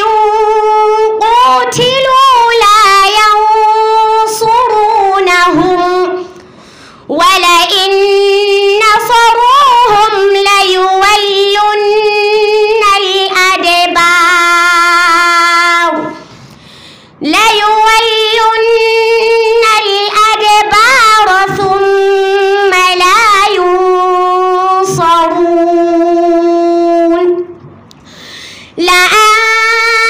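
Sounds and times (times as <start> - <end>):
girl chanting melodic recitation: 0.0 - 6.4, 7.1 - 16.3, 17.2 - 27.5, 28.8 - 30.0.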